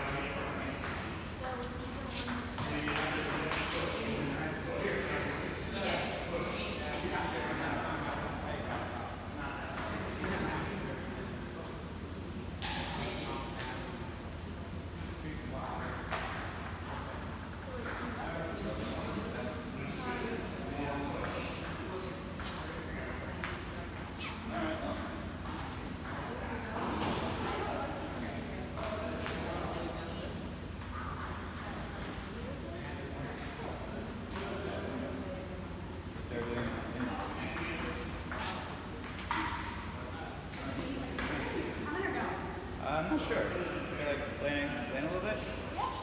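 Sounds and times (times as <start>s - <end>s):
people talking: 0.0s - 11.8s, 15.2s - 35.5s, 36.2s - 46.0s.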